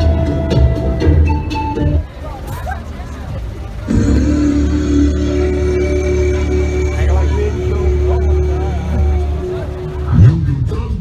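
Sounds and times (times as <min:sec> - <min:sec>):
loud music from sound system: 0:00.0 - 0:02.1, 0:03.9 - 0:11.0
voices: 0:02.0 - 0:11.0
steady low drone: 0:03.6 - 0:11.0
long held note: 0:03.9 - 0:10.1.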